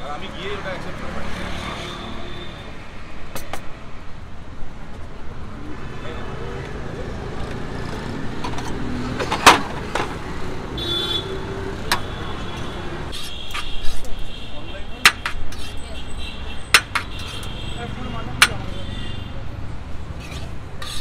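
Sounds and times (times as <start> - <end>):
road traffic: 0.0 - 21.0.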